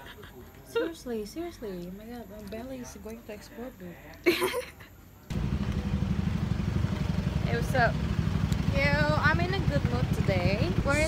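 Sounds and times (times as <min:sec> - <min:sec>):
steady low street rumble: 0:00.0 - 0:11.0.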